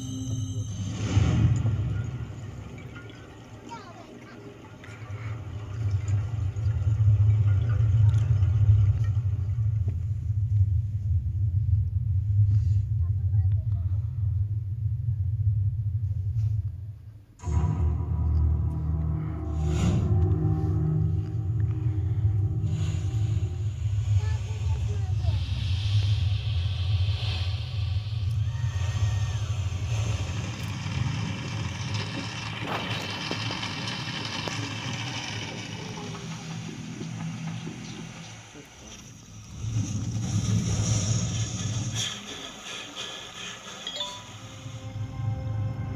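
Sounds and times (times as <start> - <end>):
deep heavy film rumble: 4.8 - 43.8
film music over loudspeakers: 17.4 - 25.2, 29.4 - 40.0.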